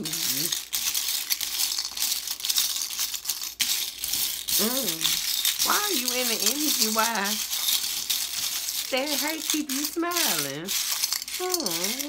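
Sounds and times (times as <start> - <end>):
small tokens clattering in a bowl: 0.0 - 12.0.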